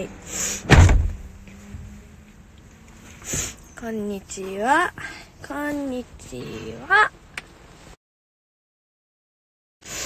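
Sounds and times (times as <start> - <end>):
car door slamming: 0.6 - 1.4.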